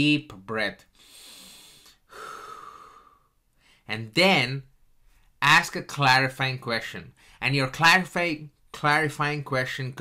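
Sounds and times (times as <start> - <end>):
man speaking: 0.0 - 0.9, 3.9 - 4.7, 5.4 - 10.0
man breathing deeply: 0.9 - 3.9.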